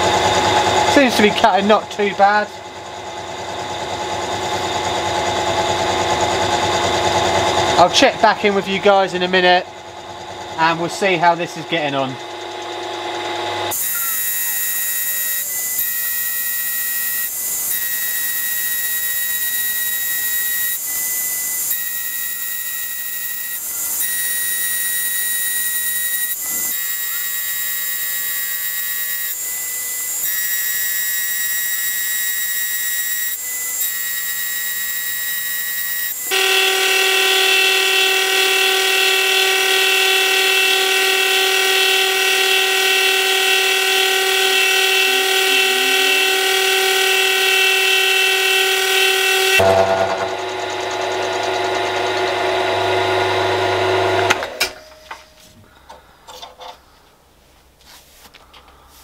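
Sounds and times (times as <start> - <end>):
lower-pitched whine: 0.0 - 29.0, 35.0 - 55.8
milling machine whine: 0.0 - 55.3.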